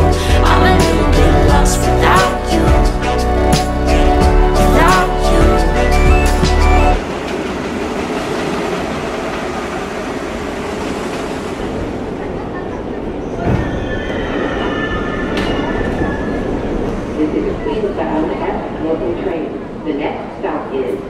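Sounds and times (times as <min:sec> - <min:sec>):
subway train rumble: 0:00.0 - 0:21.0.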